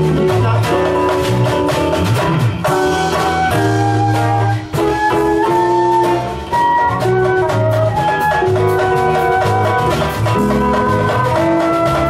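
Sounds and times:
jazz band playing live: 0.0s - 12.0s
flute melody: 2.7s - 12.0s.

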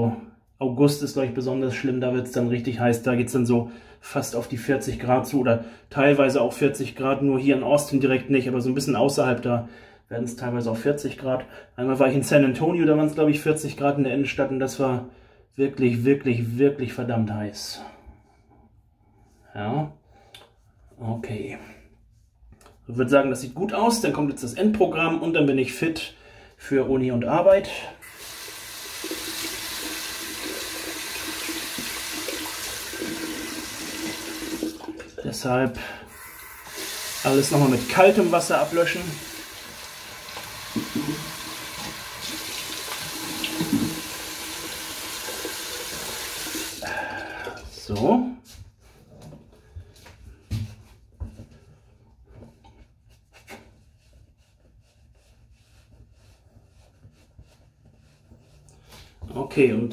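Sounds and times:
tap running into sink: 40.1s - 46.6s
towel rubbing a face: 50.8s - 59.2s.

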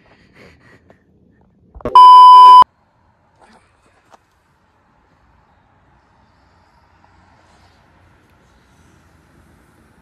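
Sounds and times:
electronic beep tone: 1.8s - 2.6s.

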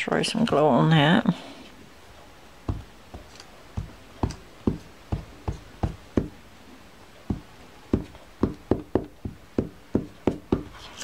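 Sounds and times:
glue stick knocking on paper: 2.7s - 6.4s, 7.3s - 10.8s.

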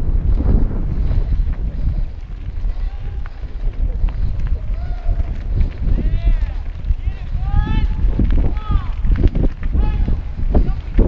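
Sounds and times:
tyres rumbling and bike rattling: 0.0s - 11.0s
wind buffeting camera: 0.0s - 11.0s
clicks and knocks from rocks: 8.0s - 11.0s.

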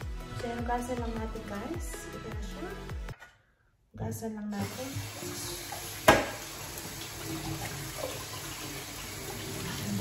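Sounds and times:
tap water splashing on vegetables: 4.7s - 9.2s
sharp knock: 6.1s - 6.4s.

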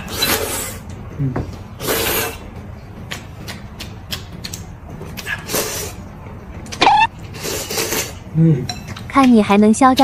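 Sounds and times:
short rising squeak: 6.8s - 7.1s.

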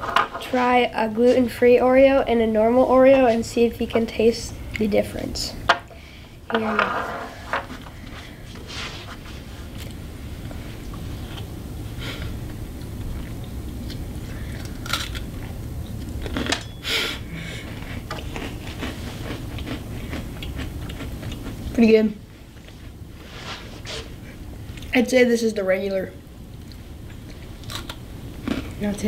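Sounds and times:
low room hum: 0.0s - 29.0s
person chewing cookie: 12.1s - 21.8s.

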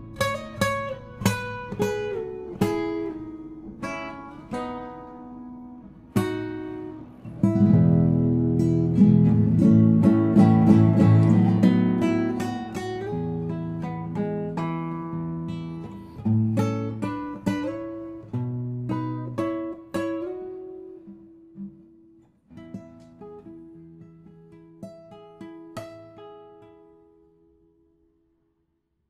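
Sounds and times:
fingerpicked classical guitar: 0.0s - 28.4s.

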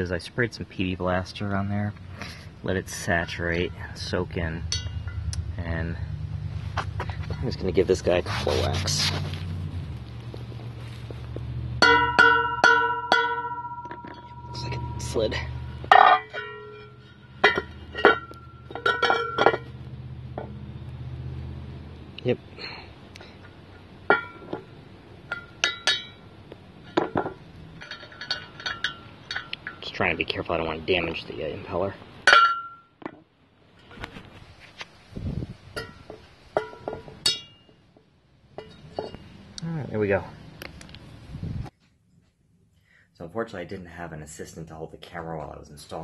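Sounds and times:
metal scrape: 2.1s - 9.8s
sharp metal clinks: 3.2s - 5.6s, 11.8s - 19.5s
hammer striking metal punch: 11.8s - 19.4s.

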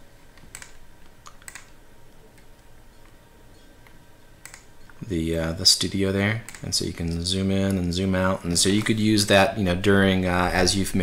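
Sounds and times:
computer mouse clicks: 0.3s - 3.2s, 3.8s - 5.0s, 6.4s - 6.7s.

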